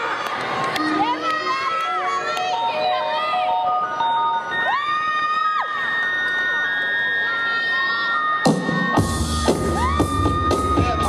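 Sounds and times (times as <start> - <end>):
audience cheering and shouting: 0.0 - 11.0.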